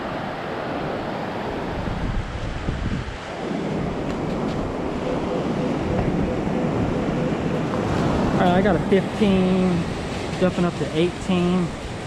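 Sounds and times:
surf washing in: 0:00.0 - 0:12.0
wind on microphone: 0:00.7 - 0:12.0.

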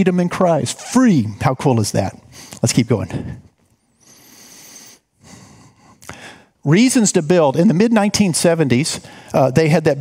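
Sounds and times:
man breathing into microphone: 0:03.2 - 0:06.6.

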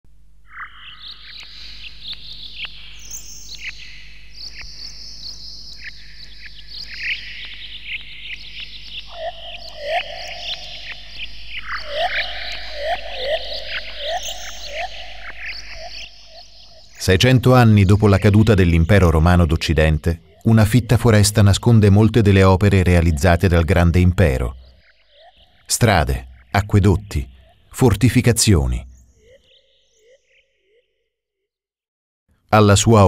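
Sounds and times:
lower bird call: 0:00.5 - 0:19.0
birds chirping and calling: 0:00.5 - 0:30.3.

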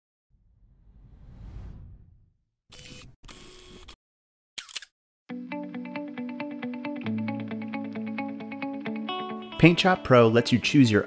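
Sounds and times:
whoosh: 0:00.4 - 0:02.5
camera shutter: 0:04.6 - 0:04.9.

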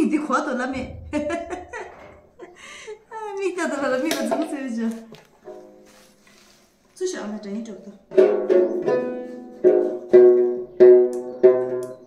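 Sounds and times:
plucked lute note: 0:08.1 - 0:12.0.

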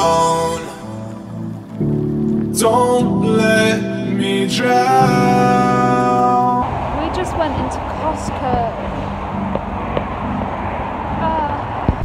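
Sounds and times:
steady low rumble: 0:00.0 - 0:12.0
wind buffeting microphone: 0:05.0 - 0:12.0.

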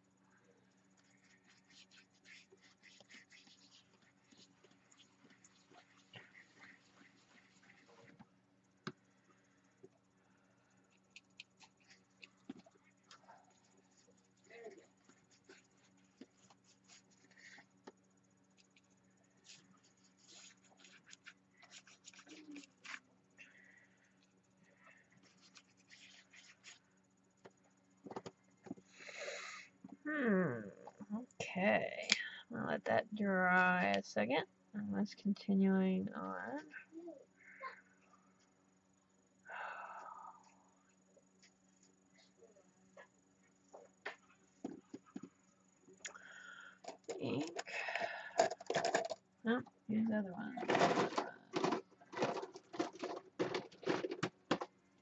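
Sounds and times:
low steady hum: 0:00.0 - 0:55.0
crayon rubbing and tapping on paper: 0:01.1 - 0:08.2.

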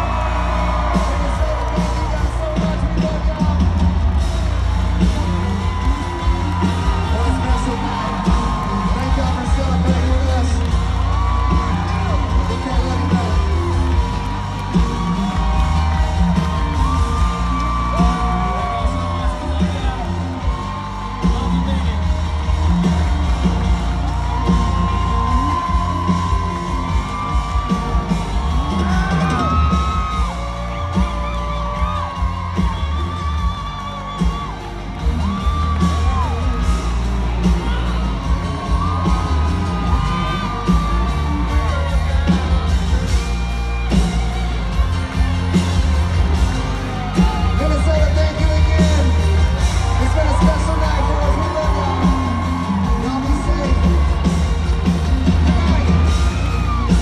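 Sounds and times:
audience whooping and yelling: 0:00.0 - 0:57.0
live country band playing: 0:00.0 - 0:57.0.

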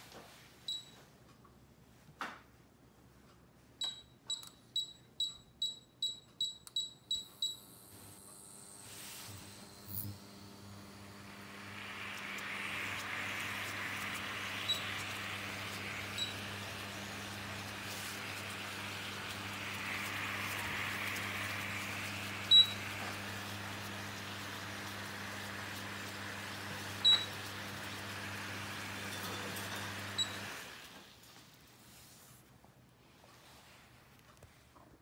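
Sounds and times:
cooktop control beeps: 0:00.6 - 0:01.1, 0:03.8 - 0:07.8, 0:10.8 - 0:28.1, 0:28.7 - 0:30.7
cooktop low hum: 0:07.2 - 0:35.0.

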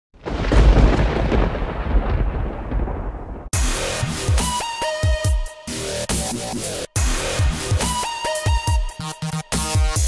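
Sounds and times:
deep thunder-like rumble: 0:00.2 - 0:03.6
electronic music with pitch sweeps: 0:03.6 - 0:10.0.

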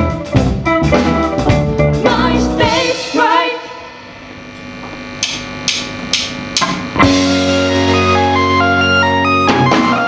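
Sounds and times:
rock band playing: 0:00.0 - 0:10.0
drumstick count-in clicks: 0:05.2 - 0:06.9.

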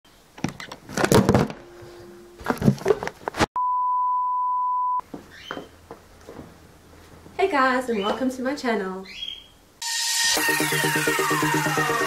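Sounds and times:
handling rustles and knocks: 0:02.4 - 0:03.5, 0:05.1 - 0:07.4
pure beep tone: 0:03.6 - 0:05.0.

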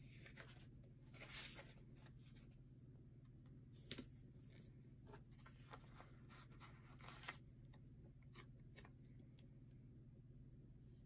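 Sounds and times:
paper sticker sheets rustling: 0:00.0 - 0:02.5
low steady hum: 0:00.0 - 0:11.0.

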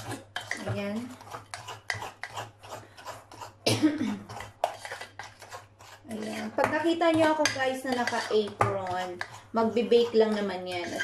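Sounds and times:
spatula scraping glass bowl: 0:00.0 - 0:11.0.

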